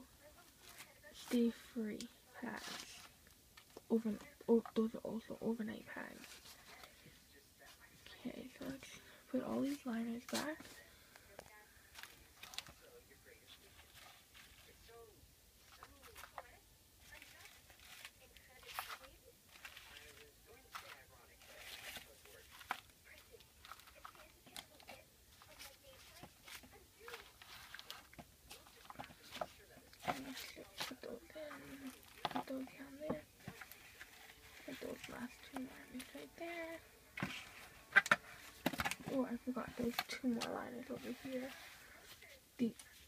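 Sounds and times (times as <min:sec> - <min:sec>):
wrappers crinkling and rustling: 0:00.2 - 0:05.4, 0:06.0 - 0:15.0, 0:15.6 - 0:43.0.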